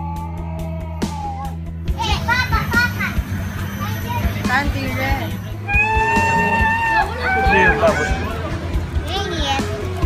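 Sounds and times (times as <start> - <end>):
children calling and squealing: 0.0 - 10.0.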